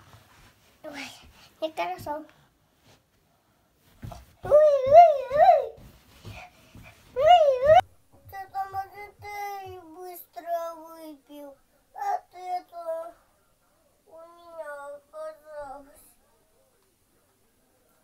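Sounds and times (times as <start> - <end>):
child singing held notes: 4.4 - 13.2.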